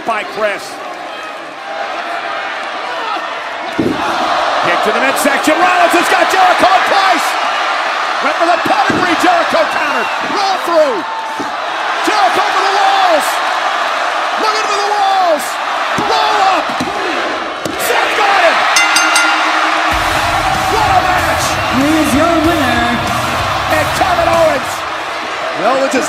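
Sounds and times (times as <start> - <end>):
crowd yelling: 0.0 - 26.0
music with heavy bass: 19.9 - 24.6.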